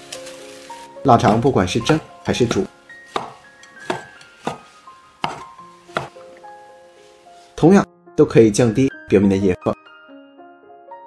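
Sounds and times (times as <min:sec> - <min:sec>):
soft background music: 0:00.0 - 0:11.0
cleaver knocking on chopping board: 0:01.3 - 0:06.2.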